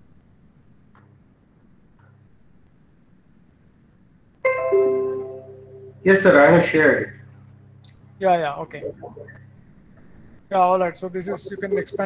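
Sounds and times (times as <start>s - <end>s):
electronic notification chime: 4.5s - 6.0s.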